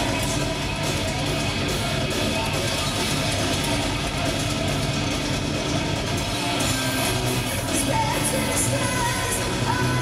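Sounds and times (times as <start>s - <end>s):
heavy metal band playing live: 0.0s - 10.0s.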